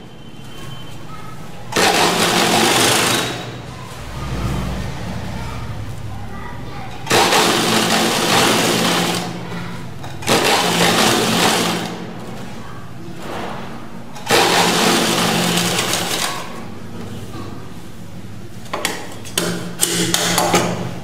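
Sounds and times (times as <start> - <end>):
sewing machine stitching: 1.7 - 3.6, 7.0 - 9.4, 10.2 - 12.0, 14.2 - 16.6.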